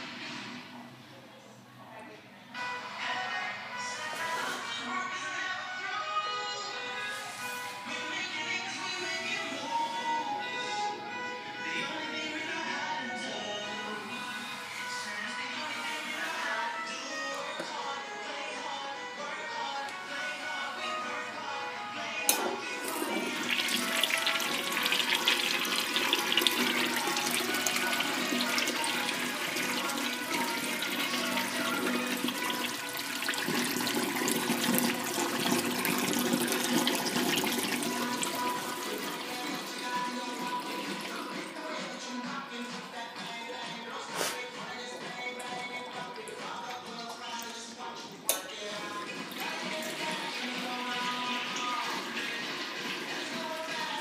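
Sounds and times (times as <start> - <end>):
urinal flushing water: 22.3 - 41.7, 48.8 - 54.0.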